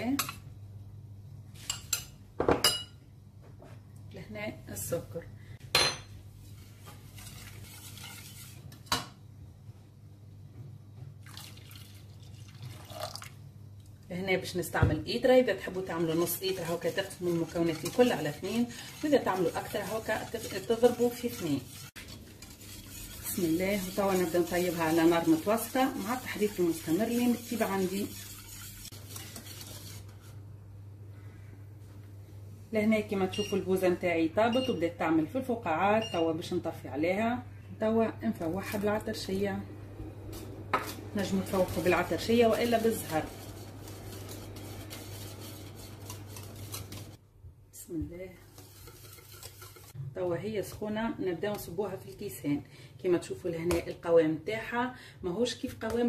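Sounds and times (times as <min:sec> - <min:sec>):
whisk stirring in metal pot: 0:06.5 - 0:08.8, 0:15.2 - 0:30.4, 0:40.4 - 0:47.2, 0:48.4 - 0:50.0
whisk clinking against pot: 0:07.1 - 0:08.7, 0:15.6 - 0:30.2, 0:40.8 - 0:47.2, 0:48.5 - 0:50.0
milk pouring into pot: 0:11.2 - 0:13.4.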